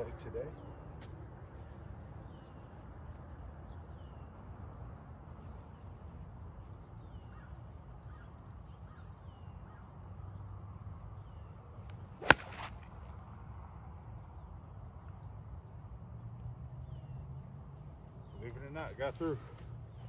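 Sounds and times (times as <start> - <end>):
golf club striking ball: 12.2 - 12.8.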